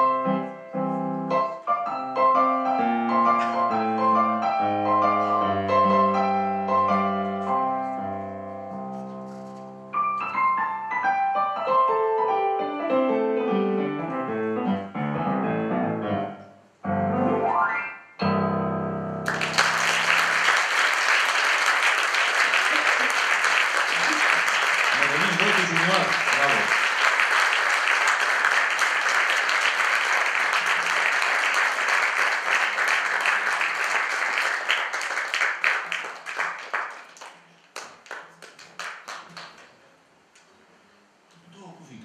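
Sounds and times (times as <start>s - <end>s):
piano chord: 0.1s - 8.9s, 9.9s - 20.3s
audience applauding: 19.2s - 39.8s.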